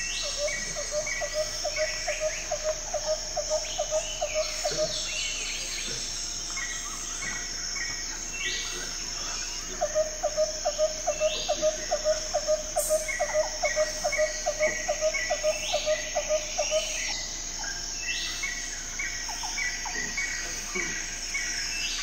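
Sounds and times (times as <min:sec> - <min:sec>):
higher chirps and calls: 0:00.0 - 0:22.0.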